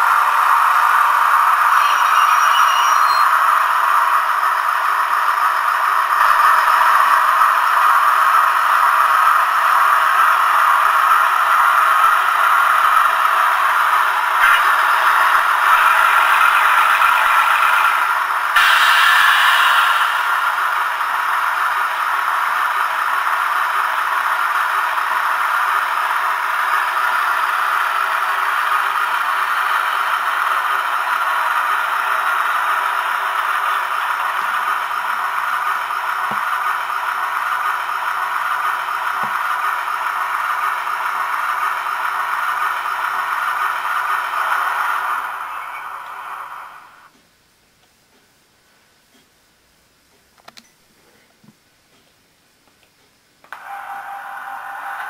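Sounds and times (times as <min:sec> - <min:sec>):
diesel engine idling from small speaker: 0:00.0 - 0:47.1
hissy burst: 0:14.4 - 0:22.8.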